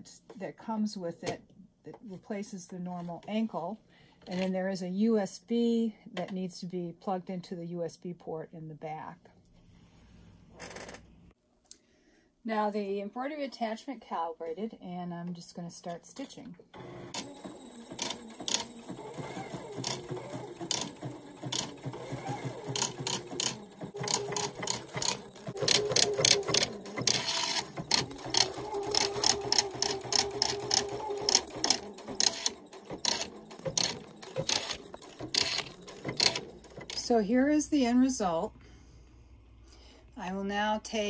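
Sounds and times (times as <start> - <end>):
motor humming: 16.8 - 37.0.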